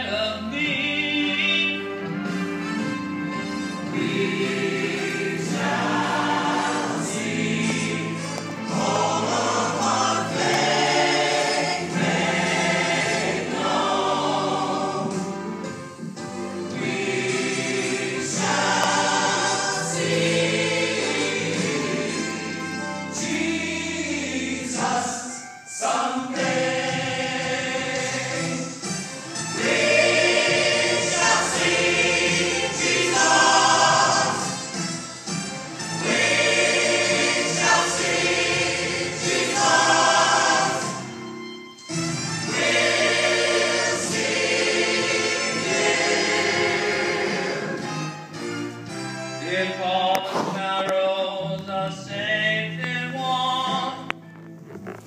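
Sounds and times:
church choir singing a hymn: 3.8s - 15.8s, 16.5s - 48.4s, 49.3s - 51.4s.

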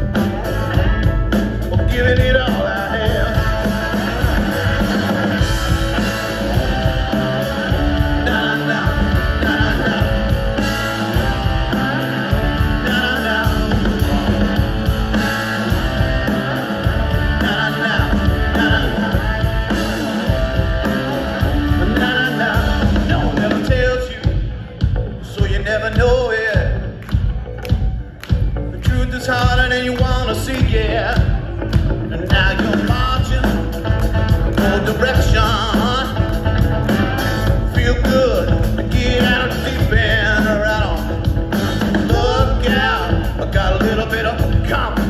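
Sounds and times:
bass guitar: 0.0s - 45.0s
drum kit: 0.0s - 45.0s
electric guitars: 0.0s - 45.0s.

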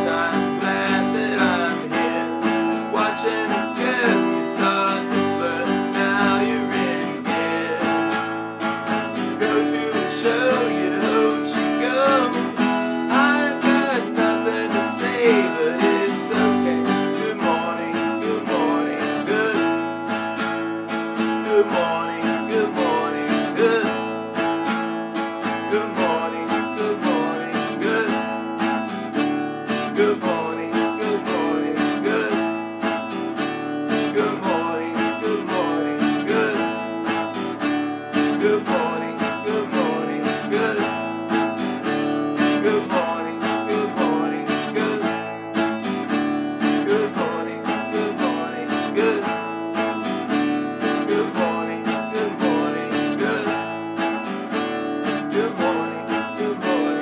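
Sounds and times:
acoustic guitar strumming chords: 0.0s - 57.0s.

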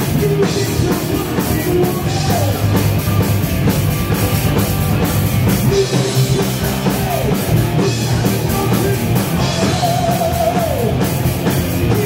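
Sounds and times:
drum kit: 0.0s - 12.0s
electric guitar: 0.0s - 12.0s
heavy metal band playing live: 0.0s - 12.0s.

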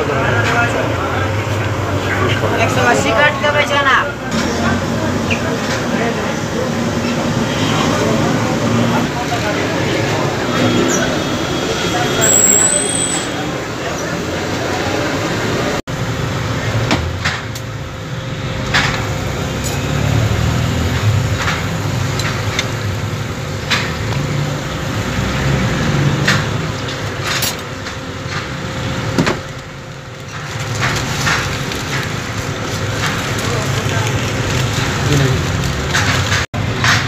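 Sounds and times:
traffic rumble: 0.0s - 37.0s.

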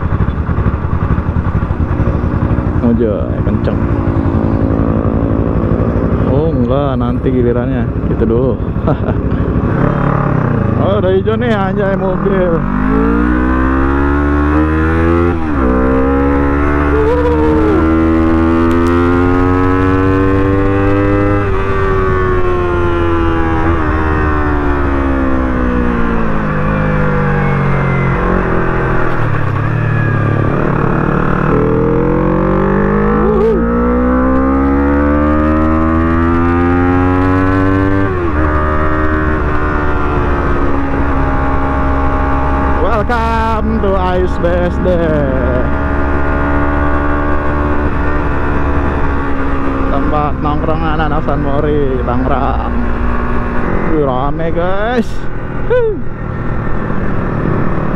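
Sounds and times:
low wind rumble: 0.0s - 57.9s
motorcycle engine accelerating: 0.0s - 57.9s.

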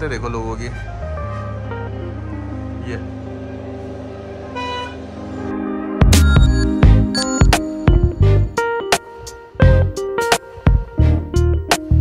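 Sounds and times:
background music: 0.7s - 12.0s
vehicle horn toot: 4.5s - 5.1s.

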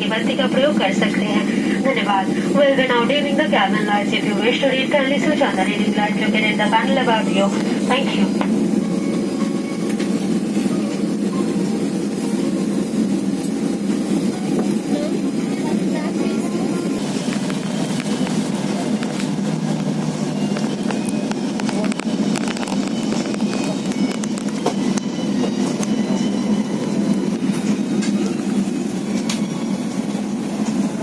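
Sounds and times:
airliner engine and wheel drone: 0.0s - 31.0s.

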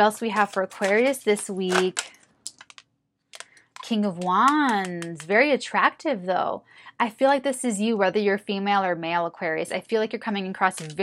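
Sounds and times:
cards being shuffled: 0.0s - 2.8s.

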